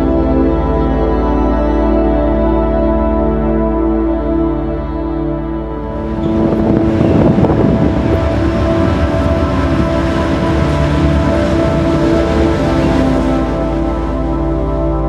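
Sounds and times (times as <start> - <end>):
ambient background music: 0.0 - 15.0
train crossing a steel bridge: 5.7 - 15.0.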